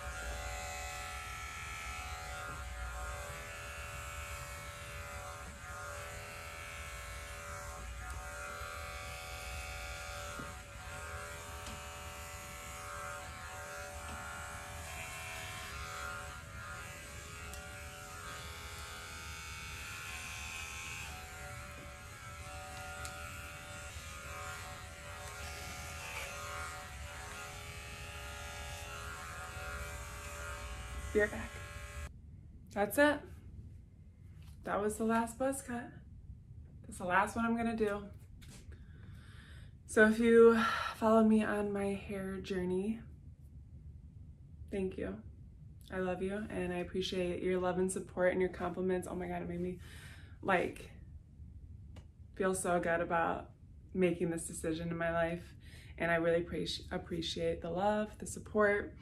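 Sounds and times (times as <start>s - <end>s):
electric hair clippers buzzing: 0.0s - 32.1s.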